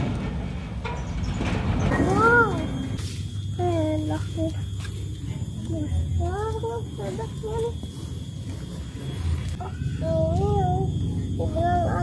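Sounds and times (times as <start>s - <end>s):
child's high-pitched vocal sound: 5.7s - 7.8s, 9.6s - 12.0s.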